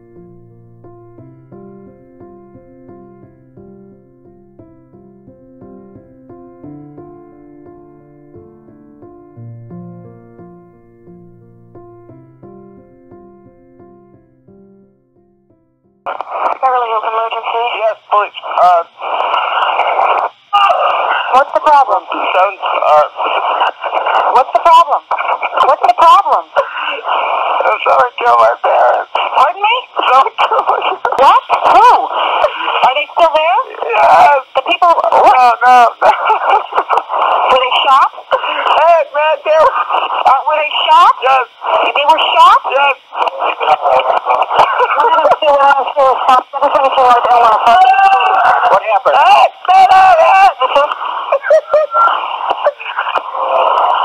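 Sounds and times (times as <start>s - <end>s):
soft piano music: 0.0s - 16.0s
person speaking over phone: 16.1s - 54.0s
phone line hiss: 16.1s - 54.0s
man crying and wailing: 44.6s - 45.4s, 51.4s - 52.2s.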